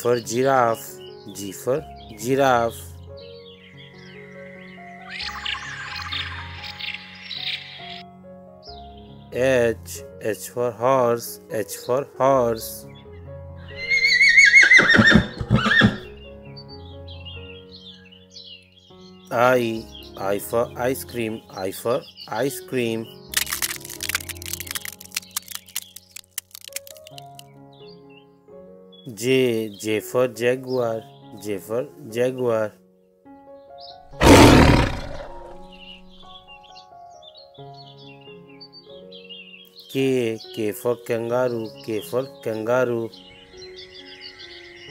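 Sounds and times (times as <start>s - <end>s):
soft background music: 0.0s - 44.9s
horse whinnying: 13.7s - 16.1s, 34.1s - 35.7s
big cat roar: 34.1s - 35.8s.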